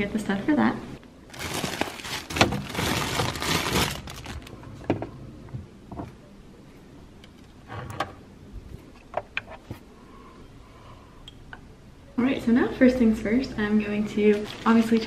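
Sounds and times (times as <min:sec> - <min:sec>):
rustling: 0:01.3 - 0:04.6.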